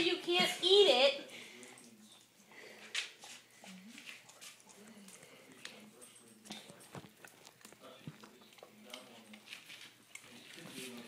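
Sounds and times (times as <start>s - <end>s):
dog licking lips: 2.9s - 11.0s.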